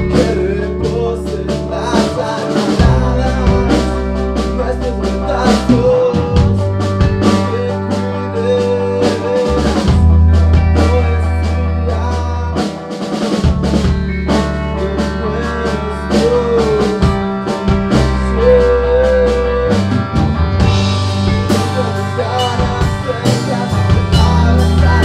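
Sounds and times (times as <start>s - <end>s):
deep bass notes: 0.0s - 25.0s
drum kit beat: 0.0s - 25.0s.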